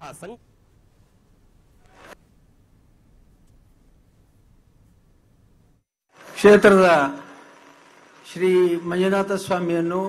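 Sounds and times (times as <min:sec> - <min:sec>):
faint low hum: 0:00.3 - 0:05.8.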